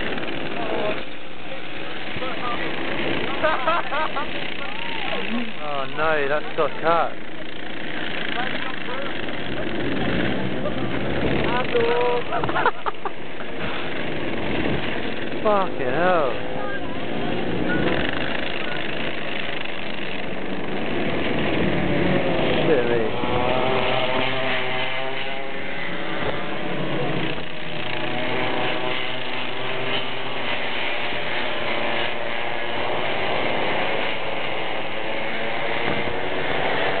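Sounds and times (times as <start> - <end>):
kart engines droning: 0.0 - 37.0.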